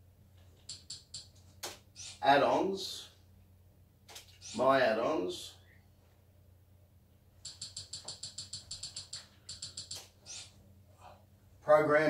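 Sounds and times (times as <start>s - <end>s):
keyboard key clicks: 7.4s - 10.1s.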